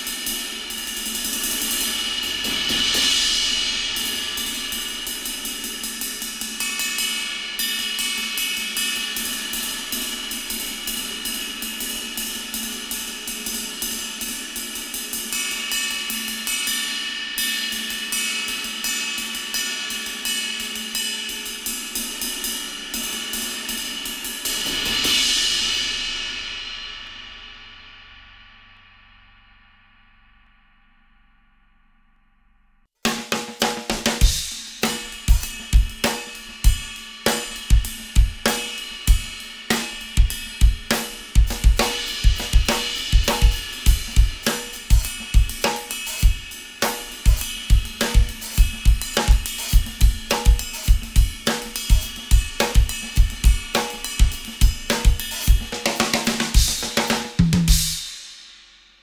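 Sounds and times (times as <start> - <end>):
ride cymbal played with drumstick: 0.0 - 30.0, 33.0 - 59.0.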